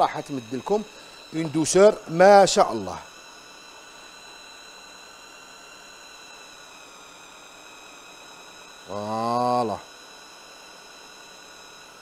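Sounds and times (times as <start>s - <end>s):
high-pitched whining tones: 0.0s - 12.0s.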